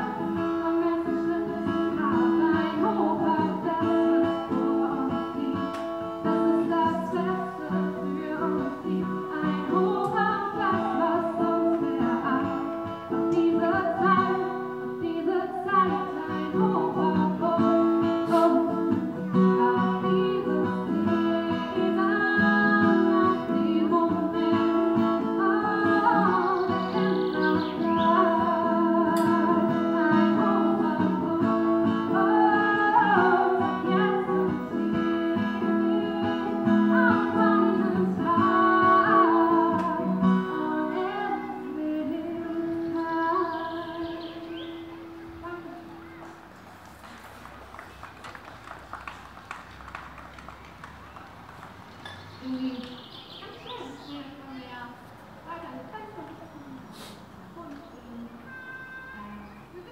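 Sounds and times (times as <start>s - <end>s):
woman singing: 0.0s - 44.7s, 45.4s - 45.9s
guitar chords: 0.0s - 46.4s.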